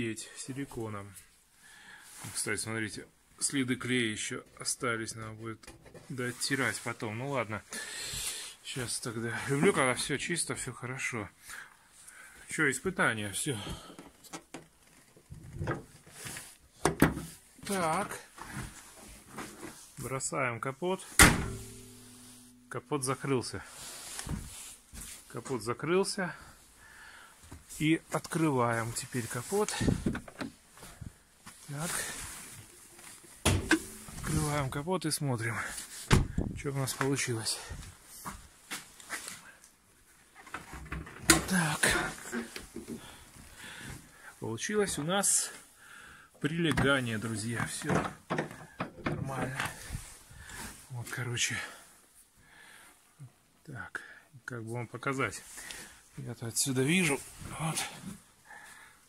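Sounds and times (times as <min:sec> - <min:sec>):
car bonnet clicks and knocks: 0:21.2 - 0:22.0.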